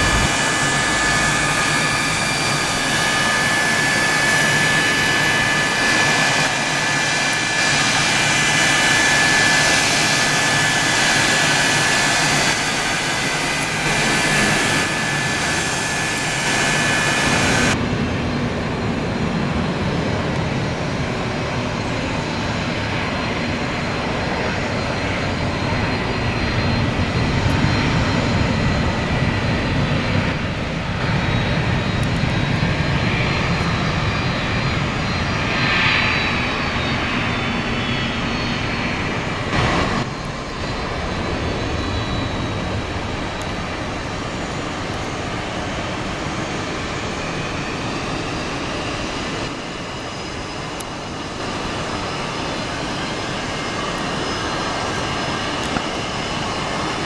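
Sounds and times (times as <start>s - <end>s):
jet engine rumble: 0.0s - 57.0s
jet engine whine: 0.0s - 57.0s.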